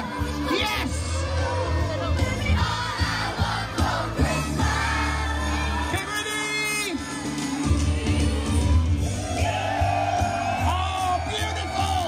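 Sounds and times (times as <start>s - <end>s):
crowd singing along: 0.0s - 10.6s
upbeat song over pa: 0.0s - 12.0s.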